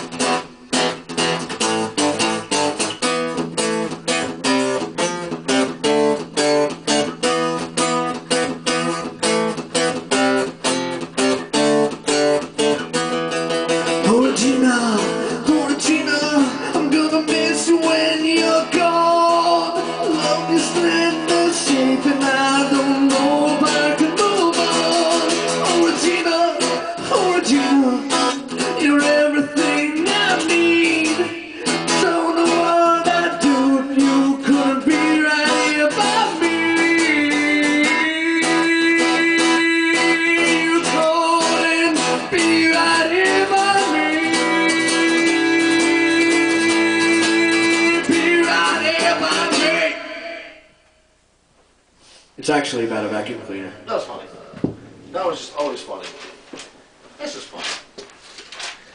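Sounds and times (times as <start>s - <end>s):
strummed acoustic guitar: 0.0s - 50.7s.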